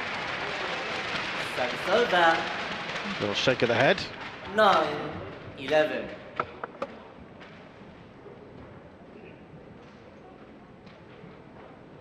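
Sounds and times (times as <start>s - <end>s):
low background hum and murmur: 0.0s - 12.0s.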